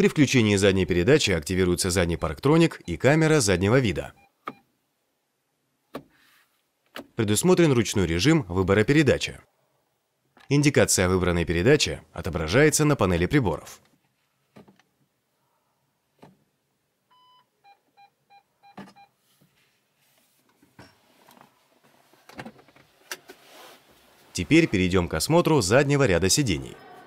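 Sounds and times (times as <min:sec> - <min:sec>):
parking sensor beeping: 0:17.1 - 0:19.2.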